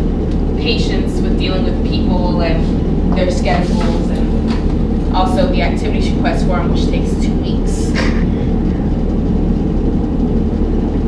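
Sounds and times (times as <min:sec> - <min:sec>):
machine hum and rumble: 0:00.0 - 0:11.0.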